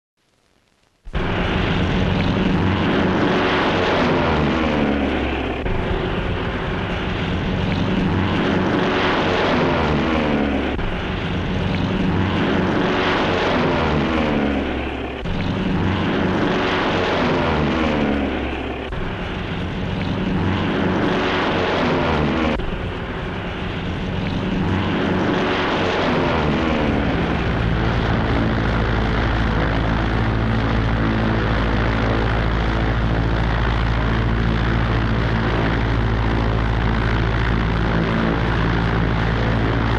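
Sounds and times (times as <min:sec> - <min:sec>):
low engine drone: 0:01.1 - 0:39.9
propeller biplanes flying past: 0:01.1 - 0:39.9.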